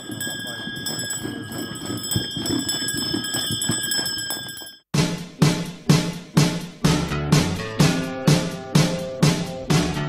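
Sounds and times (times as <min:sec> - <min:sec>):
horse hoof steps: 0:00.0 - 0:04.8
sleigh bells jingling: 0:00.0 - 0:04.8.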